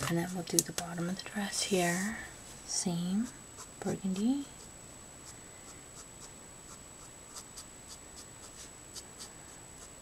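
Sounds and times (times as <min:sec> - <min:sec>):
marker scratching on cardstock: 0:06.0 - 0:10.0.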